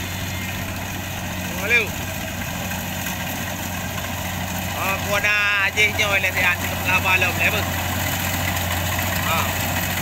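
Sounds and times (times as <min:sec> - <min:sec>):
combine harvester engine running: 0:00.0 - 0:10.0.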